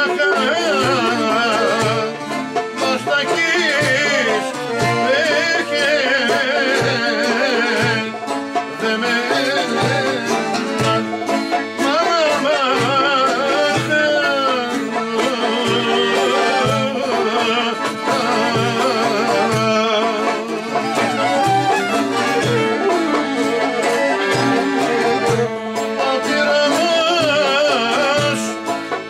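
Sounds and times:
man singing: 0:00.0 - 0:11.0, 0:11.7 - 0:28.8
ornamented lead melody: 0:00.0 - 0:29.0
plucked lute accompaniment: 0:00.0 - 0:29.0.

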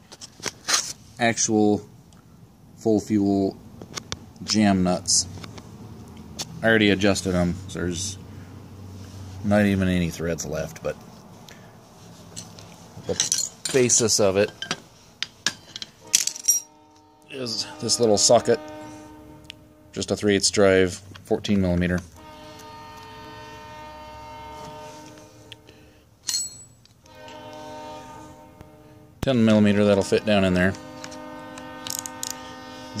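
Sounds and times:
steady background hum: 0:00.0 - 0:33.0
metal tools clinking: 0:12.2 - 0:16.8, 0:26.2 - 0:27.4, 0:31.8 - 0:32.5.

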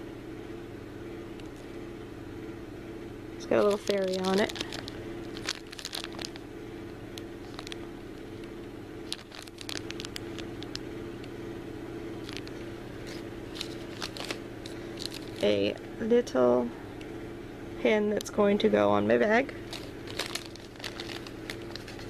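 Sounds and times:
low background hum: 0:00.0 - 0:22.0
plastic bag crinkling: 0:03.5 - 0:06.4, 0:07.4 - 0:07.9, 0:09.0 - 0:10.8, 0:12.2 - 0:15.6, 0:19.6 - 0:22.0.

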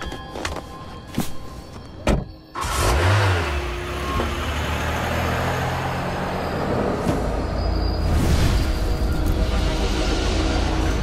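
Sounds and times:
car engine starting and running: 0:02.2 - 0:11.0.

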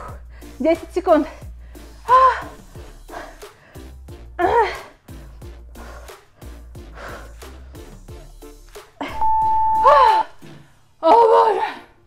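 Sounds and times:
backing music: 0:00.0 - 0:11.0
woman groaning: 0:04.4 - 0:05.0, 0:09.0 - 0:10.3
long timer beep: 0:09.1 - 0:10.2.

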